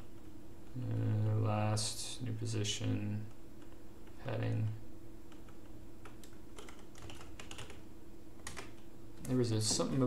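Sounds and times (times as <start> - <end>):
computer keyboard keystrokes: 5.3 - 7.8, 8.4 - 9.4.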